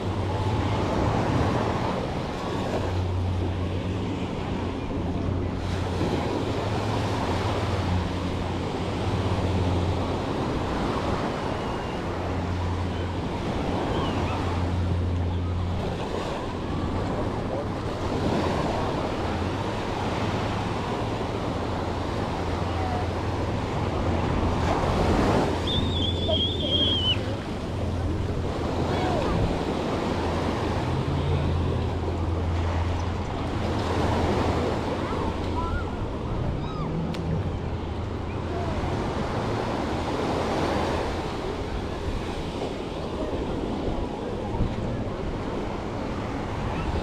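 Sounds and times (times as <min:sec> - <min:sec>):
small waves washing on sand: 0:00.0 - 0:47.0
wind rumble on microphone: 0:00.0 - 0:47.0.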